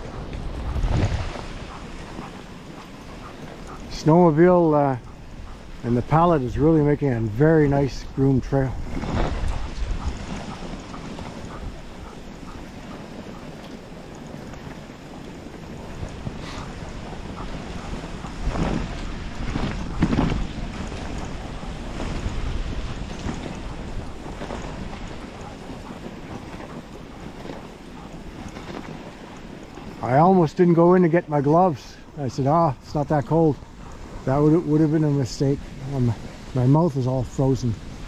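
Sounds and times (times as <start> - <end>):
sled runners hissing on snow: 0.0 - 38.0
sled swishes: 0.0 - 38.0
wind on microphone: 0.0 - 38.0.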